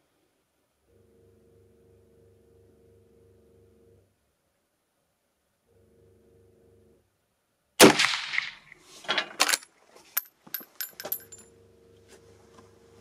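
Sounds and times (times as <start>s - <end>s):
rifle shot: 7.8s - 8.8s
brass case bouncing on concrete: 10.2s - 11.5s.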